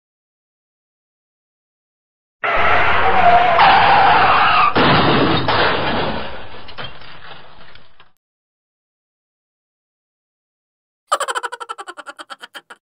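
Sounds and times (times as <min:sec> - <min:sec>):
squealing tone: 0:11.1 - 0:12.8.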